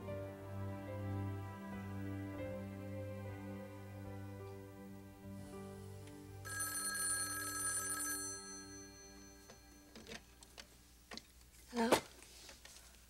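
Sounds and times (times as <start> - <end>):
soft background music chords: 0.0 - 6.6
telephone ringing: 6.4 - 10.3.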